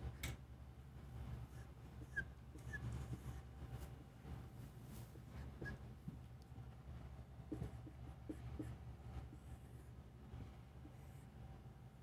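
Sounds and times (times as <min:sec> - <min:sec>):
low room hum: 0:00.0 - 0:12.0
marker squeaking on whiteboard: 0:01.6 - 0:03.4, 0:05.5 - 0:05.8.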